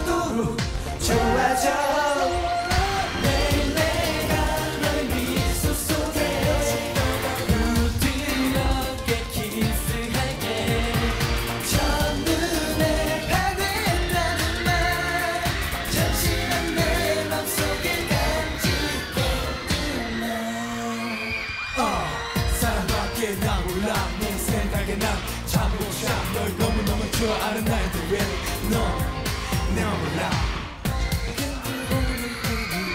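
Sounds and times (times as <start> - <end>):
pop backing track: 0.0 - 21.1, 21.8 - 32.9
man singing: 0.0 - 32.9.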